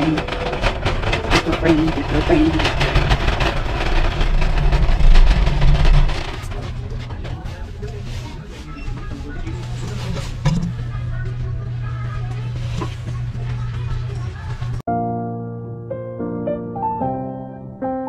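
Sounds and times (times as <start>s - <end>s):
steady low hum: 0.0s - 14.8s
background music: 13.5s - 18.0s.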